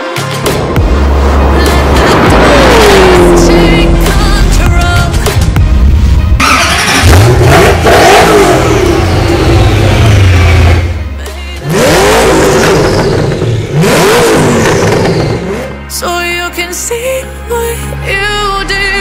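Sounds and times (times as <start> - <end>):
car engine revving at high revs: 0.5 - 15.9.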